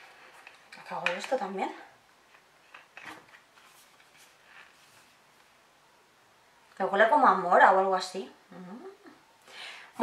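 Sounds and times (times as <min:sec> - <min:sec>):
soft rustles: 0:02.2 - 0:05.6.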